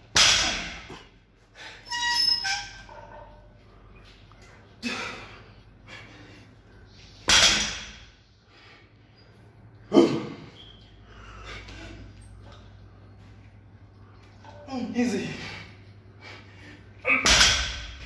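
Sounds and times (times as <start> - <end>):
steady low hum: 2.7 - 18.0
barbell plates hitting rubber floor: 7.3 - 8.1, 17.2 - 18.0.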